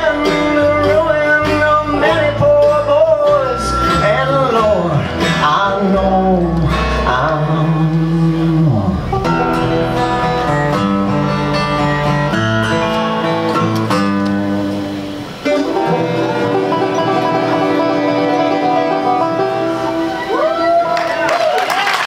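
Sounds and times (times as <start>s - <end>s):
bluegrass band playing: 0.0s - 22.0s.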